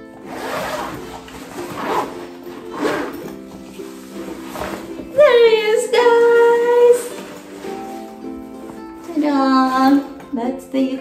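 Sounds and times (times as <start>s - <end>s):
background music: 0.0s - 11.0s
zipper pulled open: 0.2s - 5.2s.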